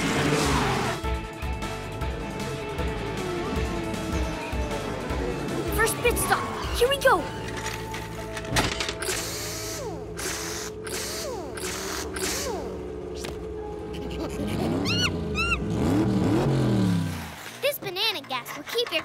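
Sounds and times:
cartoon background music: 0.0 - 15.8.

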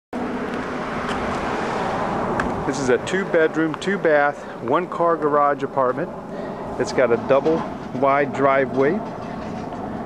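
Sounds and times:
road traffic noise: 0.1 - 10.0.

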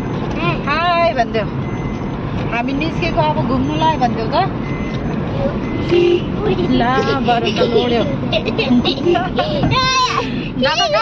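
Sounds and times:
car road and engine noise: 0.0 - 11.0
voices talking: 2.5 - 11.0.

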